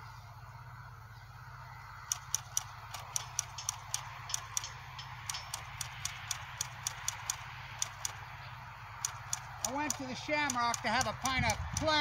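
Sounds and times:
low hum: 0:00.0 - 0:12.0
sharp short clicks: 0:02.1 - 0:08.4, 0:09.0 - 0:12.0.

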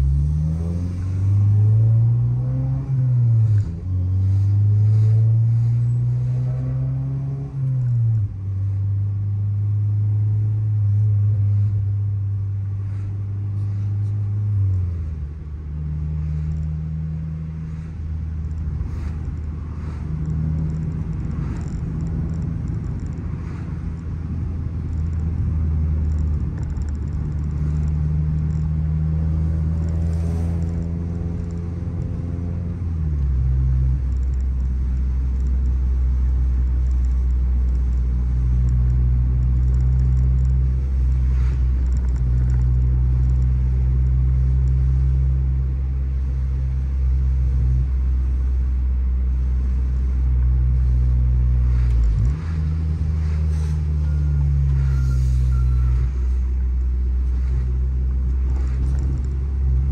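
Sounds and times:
car exhaust drone: 0:00.0 - 0:59.9.

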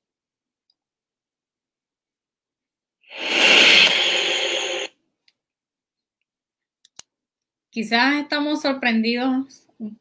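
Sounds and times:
hissy sound effect with tones: 0:03.1 - 0:04.9.

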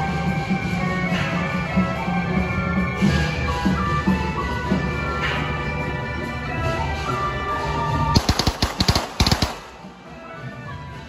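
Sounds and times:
festive procession music: 0:00.0 - 0:11.0
firecracker bangs: 0:08.2 - 0:09.9.

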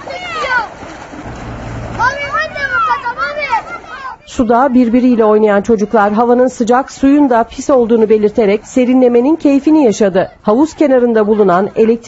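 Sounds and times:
children shouting: 0:00.0 - 0:06.3
water splashing: 0:00.0 - 0:12.0.

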